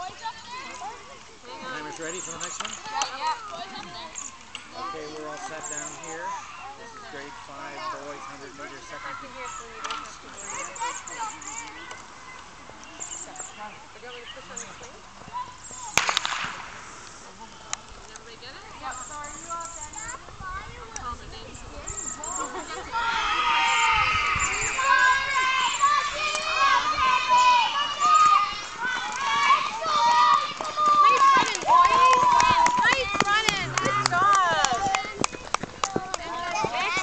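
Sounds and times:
children shouting and cheering: 0.0 - 1.9, 20.0 - 37.0.

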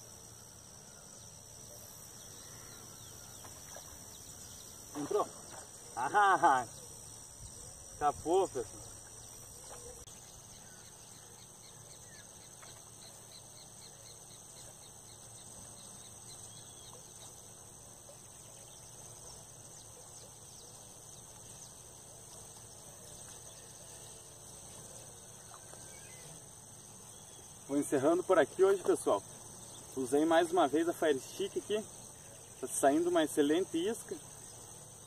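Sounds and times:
insects chirring: 0.0 - 35.0
open-air background noise: 0.0 - 35.0.

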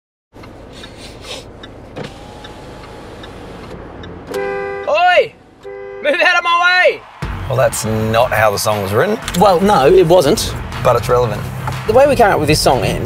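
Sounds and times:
road noise inside car: 0.4 - 7.2, 7.8 - 13.0
two-tone car horn: 4.3 - 6.5.

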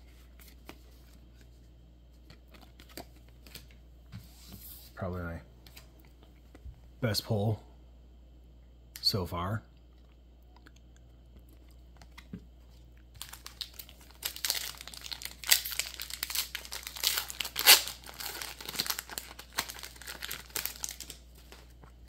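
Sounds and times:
foil wrapper tearing and crinkling: 13.2 - 21.7.

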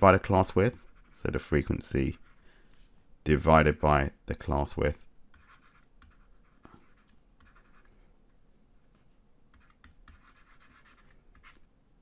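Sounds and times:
stylus scratching on tablet screen: 0.5 - 2.4, 5.3 - 8.0, 9.5 - 11.7.

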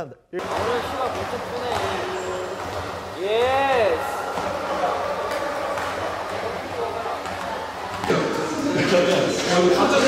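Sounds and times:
voices echoing indoors: 0.0 - 10.0
basketballs bouncing on hardwood floor: 0.4 - 8.7.

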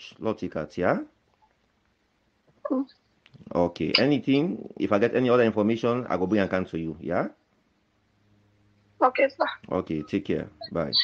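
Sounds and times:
person murmuring mm: 4.0 - 5.0.

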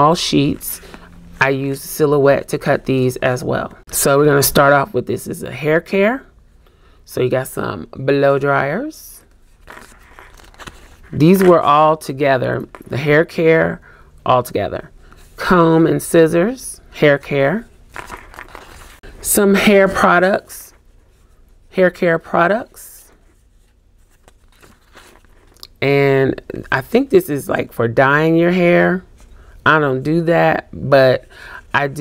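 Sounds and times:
low steady hum: 0.0 - 32.0
paper sticker sheets rustling: 9.5 - 11.9, 17.9 - 19.0, 23.1 - 25.6.

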